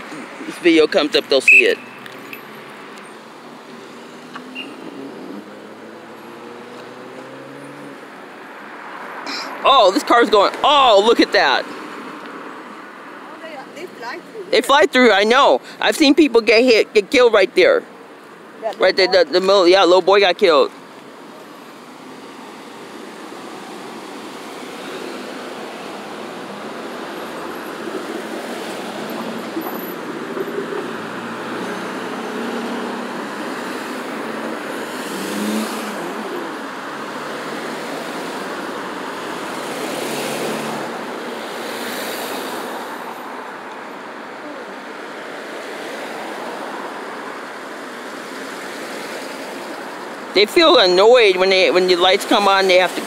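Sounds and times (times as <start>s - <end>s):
cars driving past: 0.0s - 53.0s.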